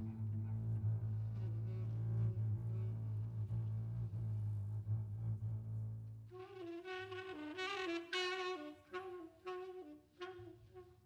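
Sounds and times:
cello and double bass: 0.0s - 7.9s.

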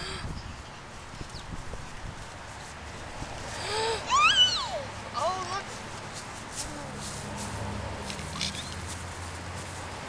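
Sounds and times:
child squealing: 4.0s - 4.9s.

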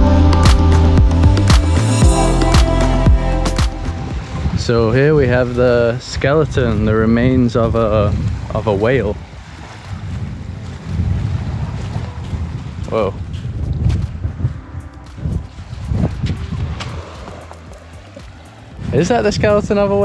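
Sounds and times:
faint surf: 1.8s - 20.0s
wind buffeting microphone: 3.9s - 20.0s.

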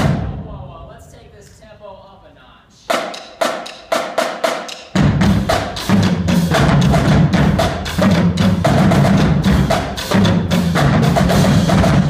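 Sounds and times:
bass drums and full drumline: 0.0s - 1.0s, 2.9s - 12.0s.

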